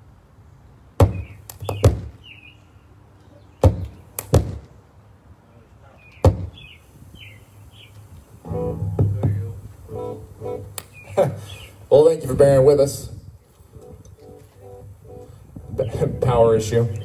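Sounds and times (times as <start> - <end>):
birds chirping faintly: 0.4 - 12.1, 13.4 - 17.0.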